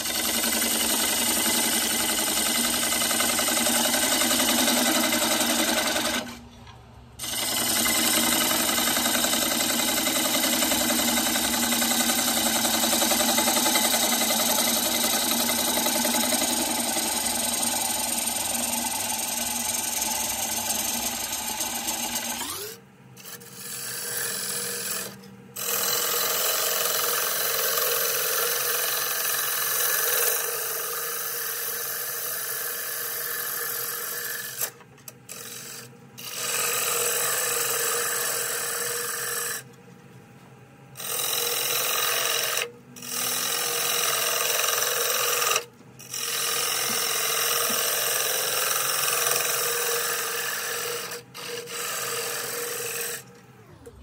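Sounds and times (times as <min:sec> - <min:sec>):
gouge scraping wood on a lathe: 0:00.0 - 0:06.4, 0:07.2 - 0:22.4, 0:23.2 - 0:34.7, 0:41.0 - 0:53.2.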